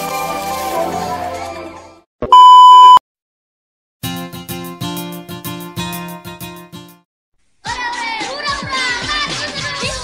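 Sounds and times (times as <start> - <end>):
loud steady test tone beep: 2.2 - 3.0.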